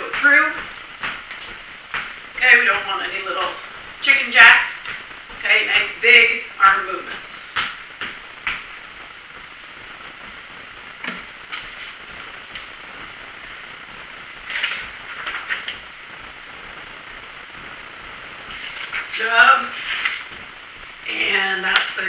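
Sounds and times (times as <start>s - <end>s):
room noise hiss: 0.0s - 22.0s
sneakers landing on a rug: 0.1s - 2.7s, 7.1s - 12.8s.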